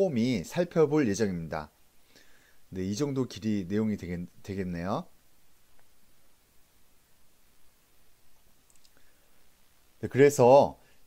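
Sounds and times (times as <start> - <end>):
faint click: 5.7 - 6.0, 8.6 - 9.1.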